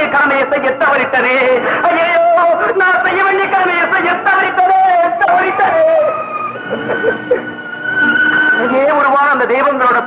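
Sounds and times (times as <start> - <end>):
man's wavering voice: 0.0 - 7.4.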